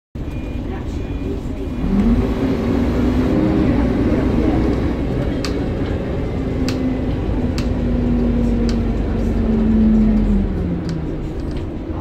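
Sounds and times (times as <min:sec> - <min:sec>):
bus engine rumble: 0:00.2 - 0:12.0.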